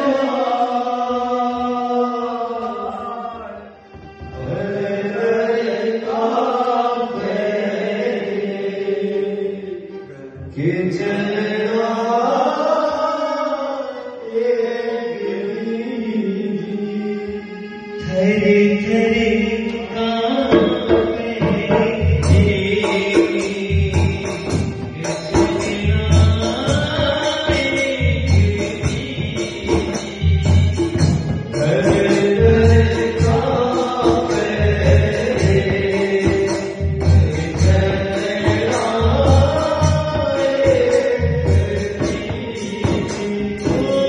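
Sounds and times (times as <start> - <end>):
man singing a chant-like song: 4.4 - 17.2, 18.0 - 44.0
hand drum: 20.5 - 44.0.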